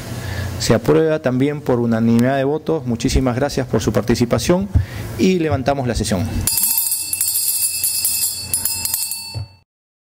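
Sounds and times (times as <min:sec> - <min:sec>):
handbell ringing rapidly: 0:06.4 - 0:09.6.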